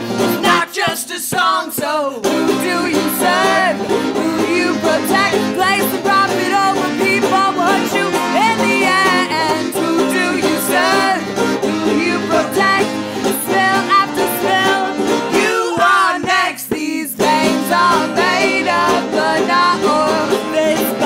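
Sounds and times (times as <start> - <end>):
accordion chords: 0.0 - 0.6, 2.2 - 21.0
strummed banjo: 0.0 - 21.0
woman singing: 0.2 - 21.0.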